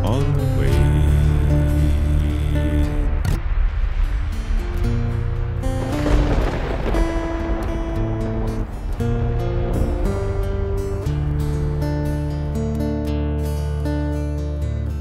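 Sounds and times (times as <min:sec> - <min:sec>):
acoustic guitar chords: 0:00.0 - 0:15.0
rain and thunder effect: 0:01.1 - 0:12.9.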